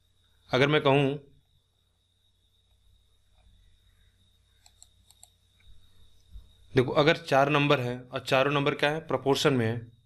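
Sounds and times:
faint high whine: 0.0 - 10.0
low electrical hum: 0.0 - 10.0
man speaking: 0.6 - 1.2, 6.8 - 9.9
faint short clicks: 4.6 - 5.4.

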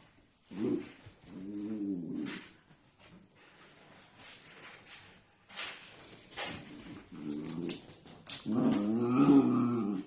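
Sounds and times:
dog growling: 0.5 - 2.4, 6.8 - 7.8, 8.4 - 10.0.

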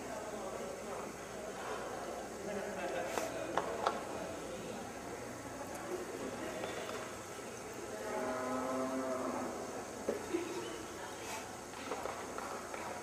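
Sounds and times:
steady background hum: 0.0 - 13.0
cow mooing: 8.1 - 9.5.

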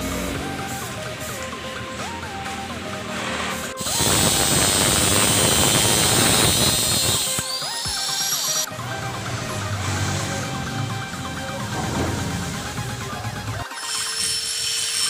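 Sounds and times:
background music: 0.0 - 15.0
angle grinder cutting steel: 2.5 - 8.8, 9.4 - 15.0.

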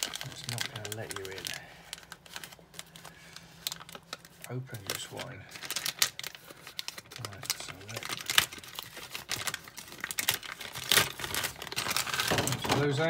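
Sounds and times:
plastic bag crinkling: 0.0 - 13.0.

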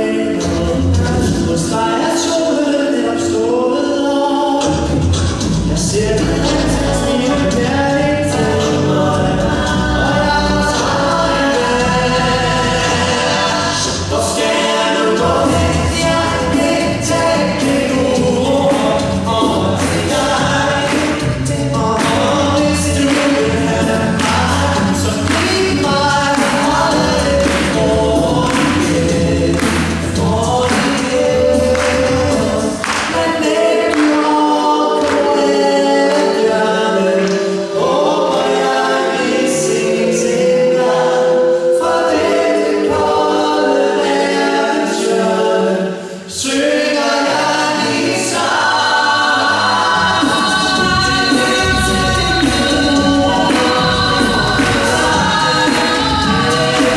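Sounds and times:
male group singing in harmony: 0.0 - 56.9
vocal percussion beat: 0.0 - 56.9
deep sung bass line: 4.6 - 14.3, 15.1 - 33.6, 49.4 - 56.9.

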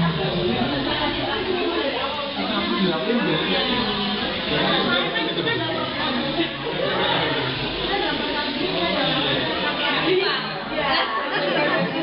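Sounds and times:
crowd chatting in a hall: 0.0 - 12.0.

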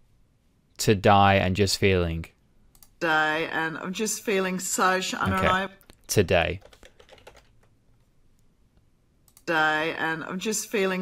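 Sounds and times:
faint keyboard keystrokes: 6.6 - 7.8.

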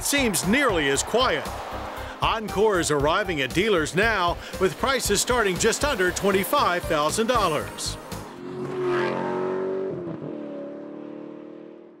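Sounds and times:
car engine pulling away: 3.9 - 12.0.

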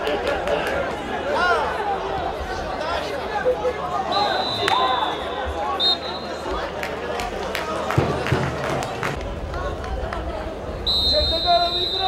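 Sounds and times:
players and crowd shouting: 0.1 - 6.7.

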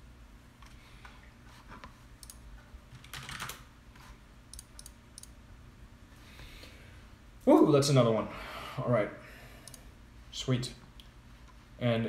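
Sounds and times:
computer mouse and keyboard clicks: 1.8 - 3.6.

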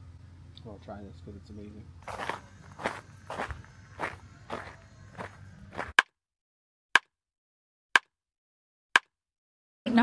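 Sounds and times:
footsteps crunching on gravel: 2.0 - 6.0.

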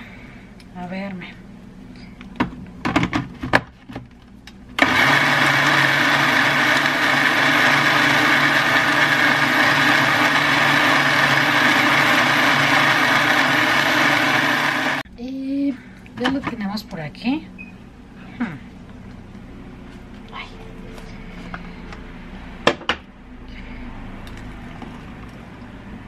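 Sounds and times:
blender running: 4.8 - 15.0.

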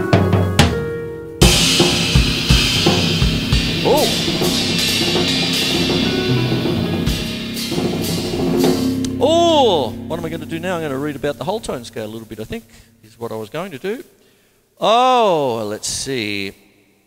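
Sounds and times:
drums struck with soft mallets: 1.4 - 11.9
cymbal crash: 1.4 - 13.0
pitched synth notes: 1.4 - 13.8.

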